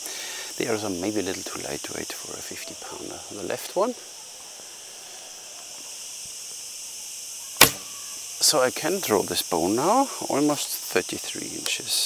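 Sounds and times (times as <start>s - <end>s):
bow string snap: 7.6s - 8.0s.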